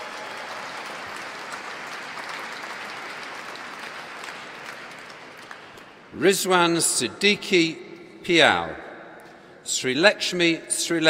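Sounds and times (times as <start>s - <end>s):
audience applauding: 0.0s - 6.0s.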